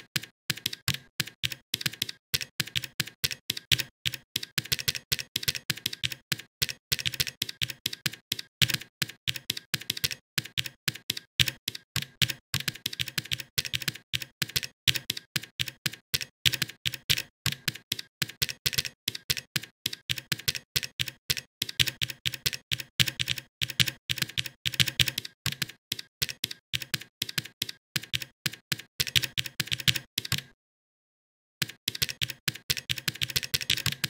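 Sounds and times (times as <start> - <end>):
keyboard typing clicks: 0.0 - 30.5, 31.6 - 34.0.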